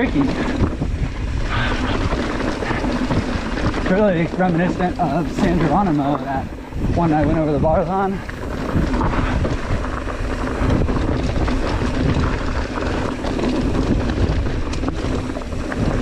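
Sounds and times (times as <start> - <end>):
bike rattling: 0.0 - 16.0
tyres crunching over gravel: 0.0 - 16.0
wind rushing over microphone: 0.0 - 16.0.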